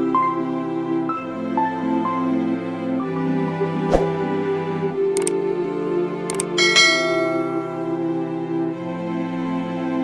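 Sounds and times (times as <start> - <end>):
soft background music: 0.0 - 10.0
mouse clicks: 5.2 - 5.4
bell-like notification chime: 6.6 - 8.0.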